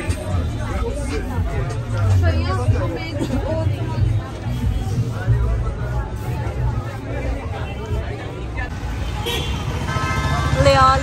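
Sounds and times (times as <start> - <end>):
people's voices: 0.0 - 11.0
traffic rumble: 0.0 - 11.0.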